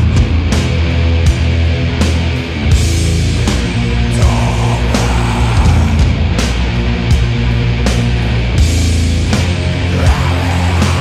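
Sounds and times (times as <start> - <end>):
doom metal music: 0.0 - 11.0.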